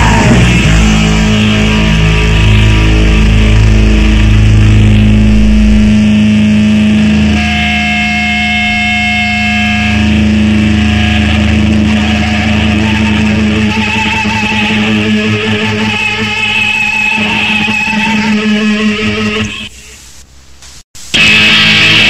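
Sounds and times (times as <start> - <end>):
deep bass: 0.0 - 7.9
high-pitched guitar feedback tone: 0.0 - 19.8, 21.1 - 22.0
distorted electric guitar drone: 0.0 - 20.0, 21.1 - 22.0.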